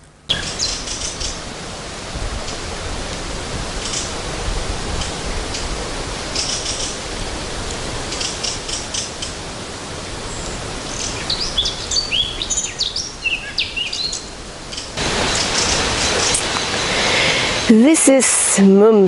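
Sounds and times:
rushing background noise: 0:00.0 - 0:19.0
small birds singing: 0:00.3 - 0:01.4, 0:06.3 - 0:07.0, 0:10.2 - 0:17.6.

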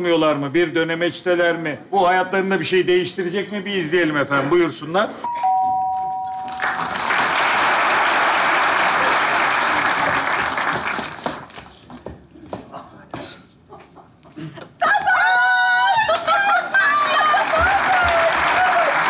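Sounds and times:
ding-dong doorbell chime: 0:05.2 - 0:06.6
stage noise: 0:05.9 - 0:11.0
audience applause: 0:06.5 - 0:11.5, 0:16.1 - 0:19.0.

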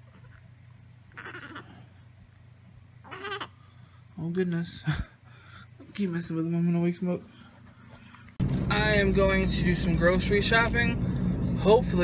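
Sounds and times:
low steady hum: 0:00.0 - 0:12.0
baby squeaking: 0:03.0 - 0:03.6.

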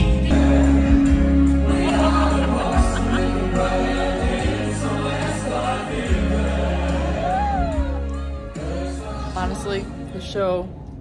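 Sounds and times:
live music with singing: 0:00.0 - 0:10.6.

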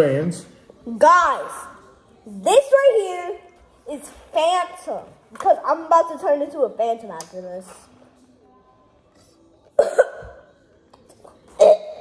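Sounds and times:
person coughing: 0:09.8 - 0:10.4.

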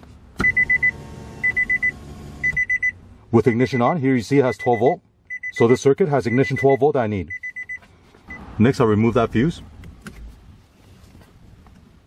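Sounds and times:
car warning chime beeps: 0:00.4 - 0:08.5.

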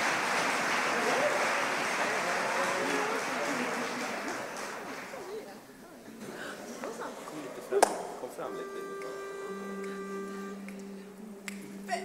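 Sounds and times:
pitch pipe note: 0:08.4 - 0:12.0
singers humming: 0:08.5 - 0:12.0.

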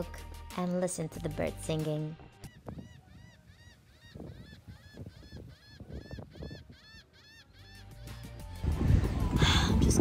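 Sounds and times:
gulls calling: 0:01.7 - 0:08.6.

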